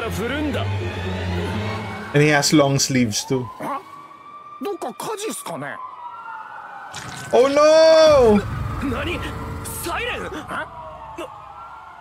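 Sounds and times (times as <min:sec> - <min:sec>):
rising siren tone: 0:00.0 - 0:12.0
siren steady tone: 0:00.0 - 0:12.0.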